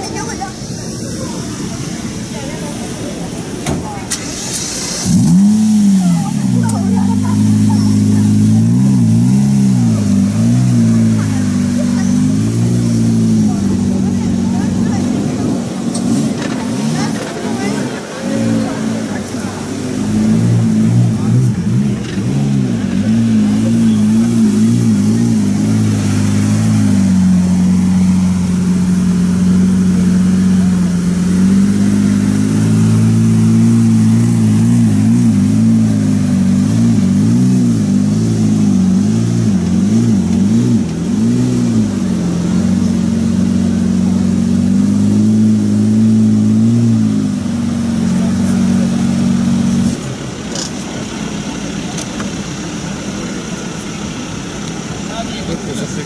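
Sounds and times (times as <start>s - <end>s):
car engine idling: 0.0s - 56.0s
street noise: 0.0s - 56.0s.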